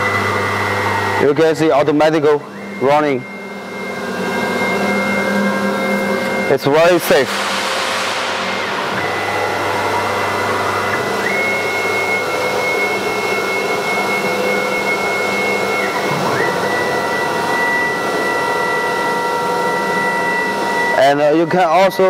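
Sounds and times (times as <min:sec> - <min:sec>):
cnc router spindle whirring: 0:00.0 - 0:22.0.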